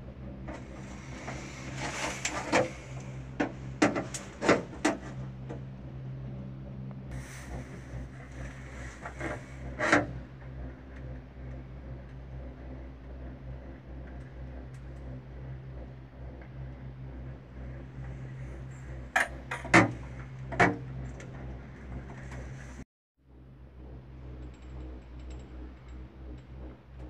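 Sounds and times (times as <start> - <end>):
gondola cabin low hum: 0.0 - 27.0
sharp knocks and rattles: 0.4 - 5.7.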